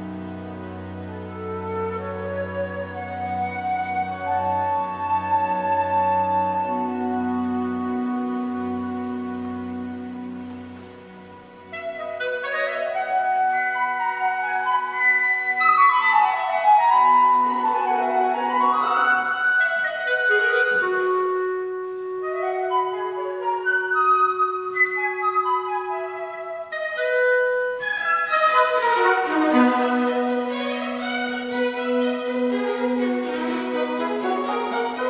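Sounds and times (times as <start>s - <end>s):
chamber orchestra classical piece: 0.0s - 35.0s.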